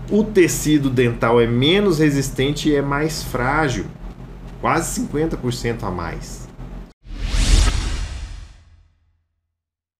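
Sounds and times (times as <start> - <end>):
deep whoosh: 7.0 - 8.9.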